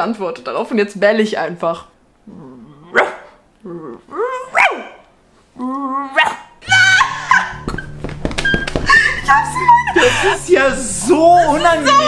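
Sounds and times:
woman imitating dog barks: 4.2s - 5.0s, 6.0s - 7.1s
people laughing: 6.6s - 10.9s
background music: 6.6s - 12.0s.

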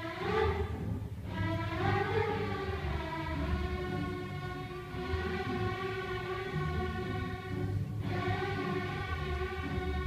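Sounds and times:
string orchestra sustained notes: 0.0s - 10.0s.

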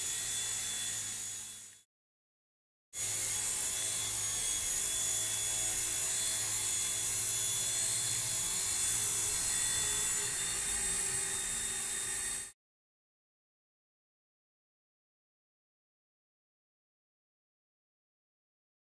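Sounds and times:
toy helicopter motor whine: 0.0s - 1.9s, 3.0s - 12.6s.

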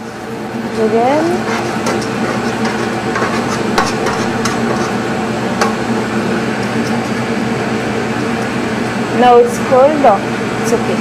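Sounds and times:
ventilation hum: 0.0s - 11.0s
metal baking sheet knocking and scraping: 1.0s - 5.0s.

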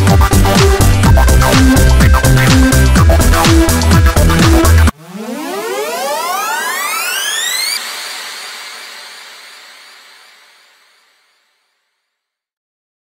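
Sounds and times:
synthesizer riser gliding upward: 0.4s - 11.8s.

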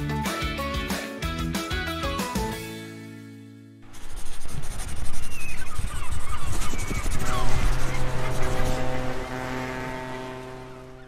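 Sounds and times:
whooshing crackling effects: 3.8s - 9.0s.

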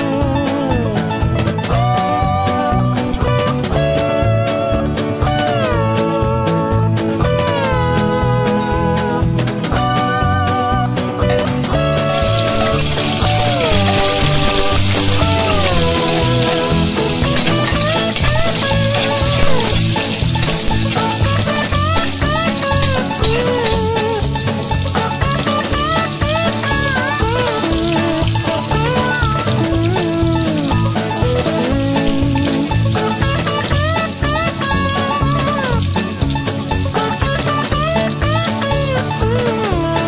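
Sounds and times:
background music with beat: 0.0s - 40.0s
garlic sizzling in hot oil: 11.8s - 40.0s
metal spatula stirring: 12.1s - 26.7s.

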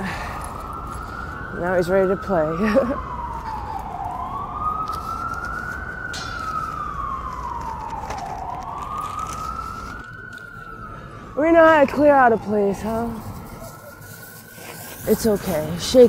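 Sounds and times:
wailing emergency siren: 0.0s - 16.0s.

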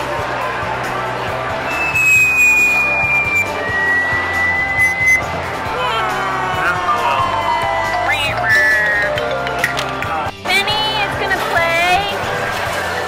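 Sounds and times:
long high beeps: 1.7s - 5.3s
sweeping electronic tones: 1.7s - 5.3s.

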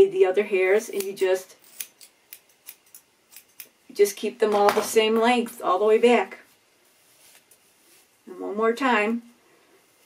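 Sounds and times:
scissors snipping hair: 0.8s - 3.8s.

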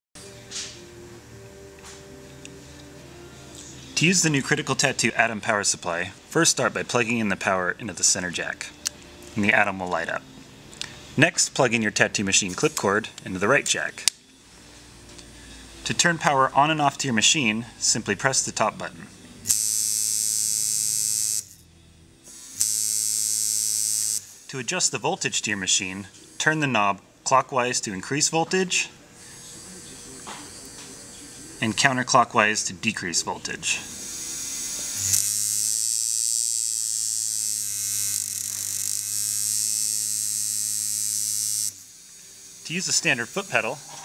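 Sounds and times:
tattoo machine buzzing: 19.4s - 21.7s, 22.3s - 24.5s, 33.8s - 44.0s.

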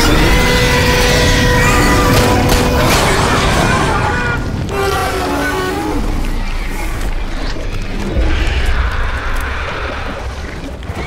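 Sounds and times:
dramatic film score: 0.0s - 11.0s
low rumble of sound effects: 1.3s - 11.0s.

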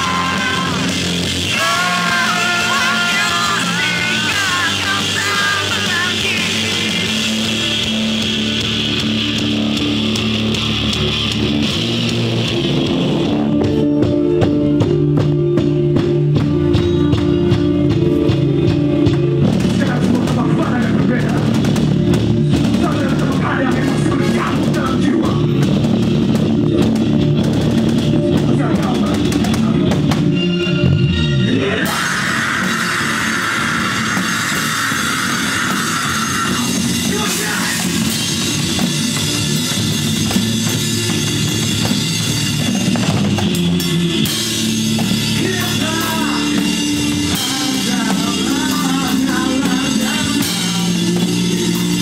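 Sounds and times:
rock music with electric guitar: 0.0s - 52.0s.

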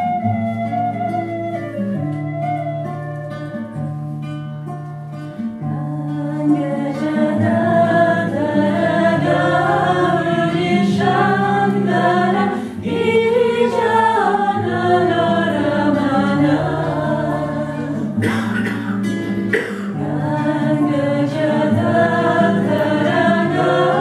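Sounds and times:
strummed classical guitar: 0.0s - 24.0s
women singing together: 5.6s - 18.7s, 19.9s - 24.0s.

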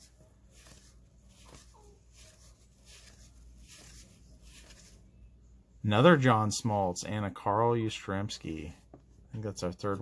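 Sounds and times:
cardboard cards being shuffled: 0.0s - 5.0s.

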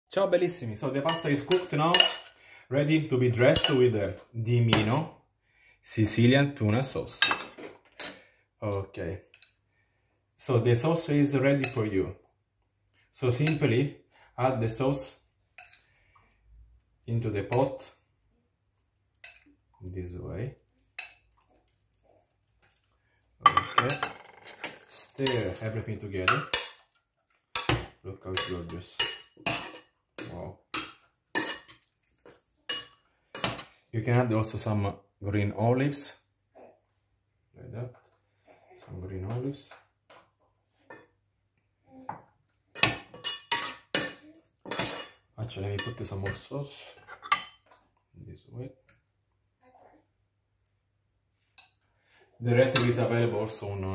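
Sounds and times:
spoon clanking on metal saucepan: 1.1s - 2.3s, 32.7s - 33.6s.

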